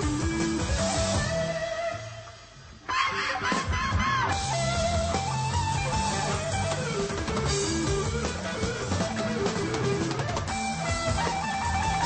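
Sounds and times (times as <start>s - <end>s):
bass guitar: 0.0s - 12.0s
drums: 0.0s - 12.0s
electric guitar solo: 0.0s - 12.0s.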